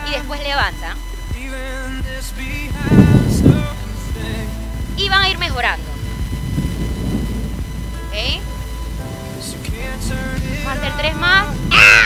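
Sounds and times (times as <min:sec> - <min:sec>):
low uneven outdoor rumble: 0:00.0 - 0:12.0.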